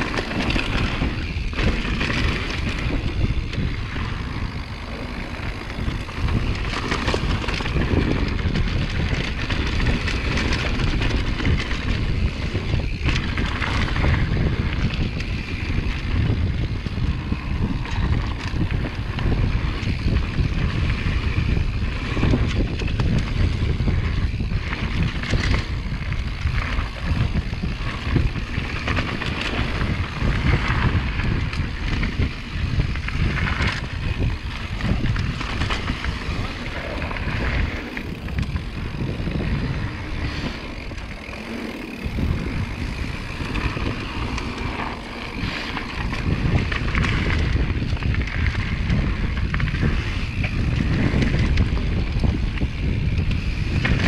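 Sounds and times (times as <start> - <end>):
bike knocks and rattles: 0.0 - 54.0
bike tyres on dirt: 0.0 - 54.0
wind buffeting microphone: 0.0 - 54.0.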